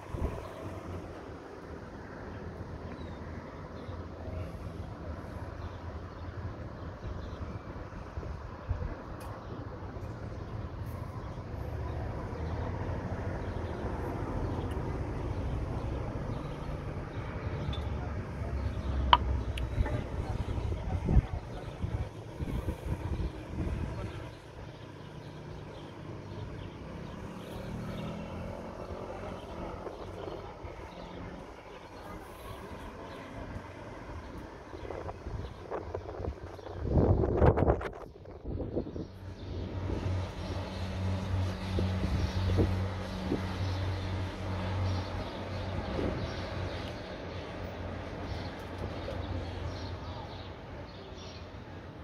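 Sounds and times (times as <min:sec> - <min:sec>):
vehicle engine droning: 0:10.0 - 0:35.2.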